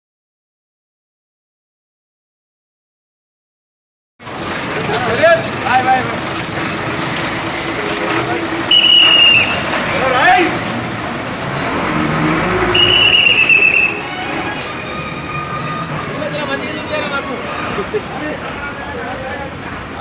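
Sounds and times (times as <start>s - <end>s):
buses pulling past: 4.2s - 20.0s.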